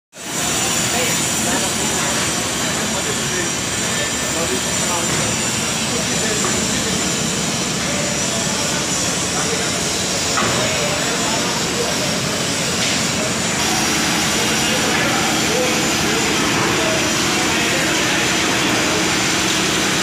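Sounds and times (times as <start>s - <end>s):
indistinct voices: 0.4s - 20.0s.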